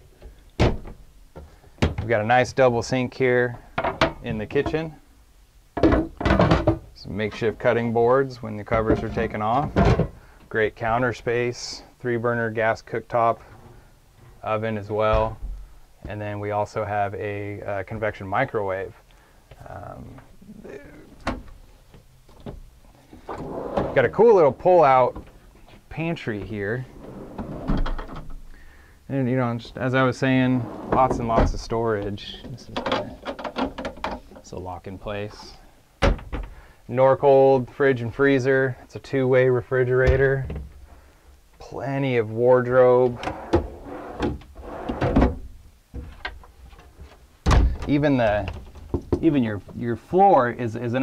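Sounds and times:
pantry drawer rolling on slides: 0:23.2 - 0:24.2, 0:26.8 - 0:28.0, 0:30.5 - 0:31.3, 0:43.2 - 0:45.3
cabinet doors and drawer clicking: 0:26.9 - 0:28.4, 0:43.0 - 0:46.4
loud thump: 0:47.4 - 0:47.9.

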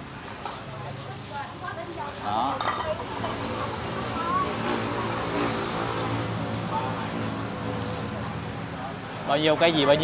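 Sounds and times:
faint voices talking: 0:00.3 - 0:10.0.

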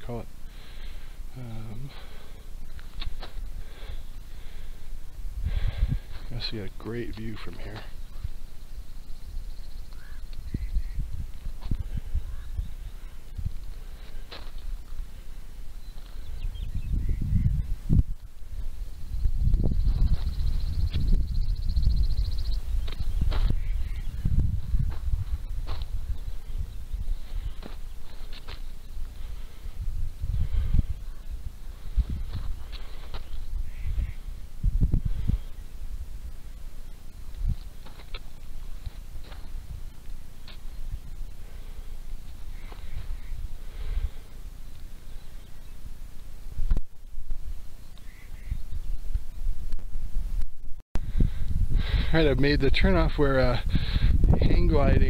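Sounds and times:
wind buffeting microphone: 0:03.1 - 0:15.2, 0:15.8 - 0:44.3, 0:45.4 - 0:55.0.

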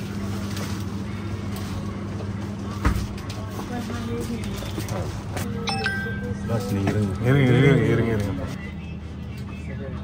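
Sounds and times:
drinks fridges humming: 0:00.0 - 0:10.0.

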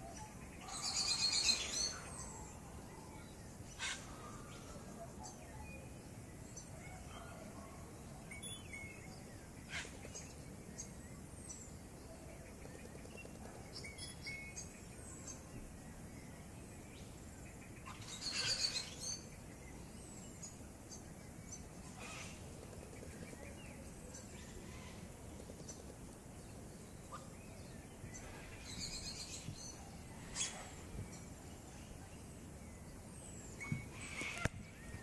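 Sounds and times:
birds chirping: 0:00.0 - 0:35.0.

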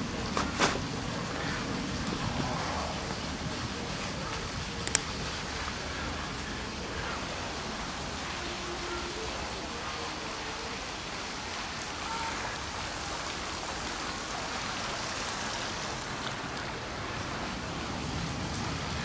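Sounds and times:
outdoor background hiss: 0:00.0 - 0:19.0.

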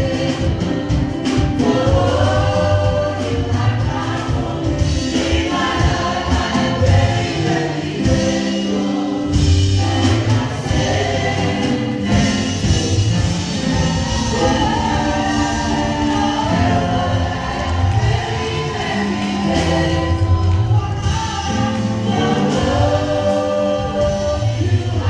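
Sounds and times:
bass line: 0:00.0 - 0:25.0
group singing gospel song: 0:00.0 - 0:25.0
keyboard accompaniment: 0:00.0 - 0:25.0.

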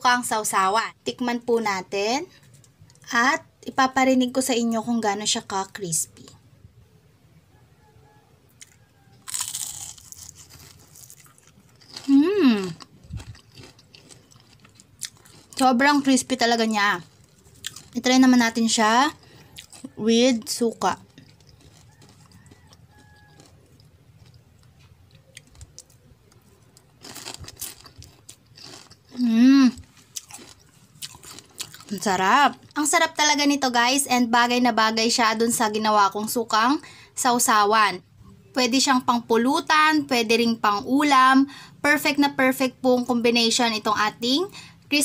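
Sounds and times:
chewing crunching: 0:08.6 - 0:32.8
crunching fried fish: 0:08.6 - 0:32.9
person humming mmm: 0:12.1 - 0:12.8, 0:29.2 - 0:29.8.

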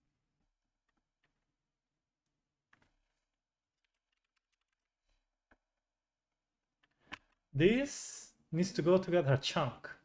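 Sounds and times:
faint keyboard typing: 0:03.8 - 0:05.0.

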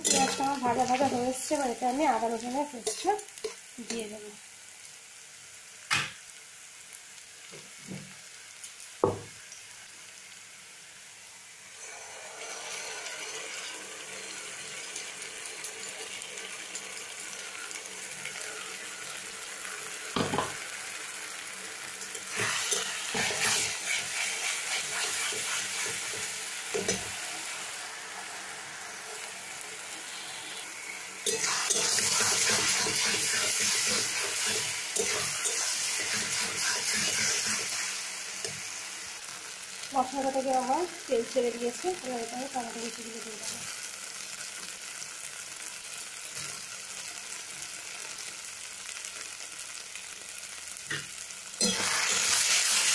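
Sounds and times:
spatula stirring and scraping: 0:00.0 - 0:01.2, 0:02.7 - 0:04.0, 0:22.0 - 0:27.3, 0:31.2 - 0:38.6
onions sizzling in hot oil: 0:00.0 - 0:52.9.

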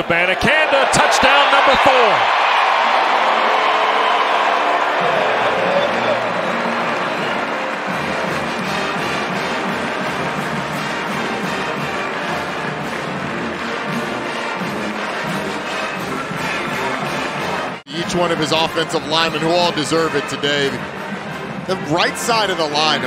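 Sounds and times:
stadium crowd cheering: 0:00.0 - 0:23.0
brass band playing: 0:04.3 - 0:23.0.

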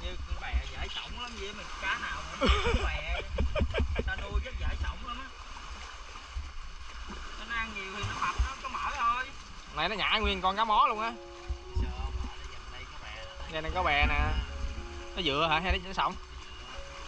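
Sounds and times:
people talking: 0:00.0 - 0:05.3, 0:07.4 - 0:11.2, 0:11.8 - 0:14.5, 0:15.2 - 0:16.2
water splashing: 0:00.0 - 0:17.0
low rumble: 0:03.0 - 0:05.1, 0:11.5 - 0:16.6.

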